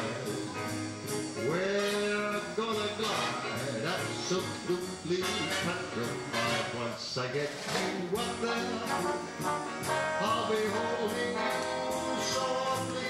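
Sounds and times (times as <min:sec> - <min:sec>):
man singing: 0:00.0 - 0:00.7, 0:01.4 - 0:13.0
swing big band playing: 0:00.0 - 0:13.0.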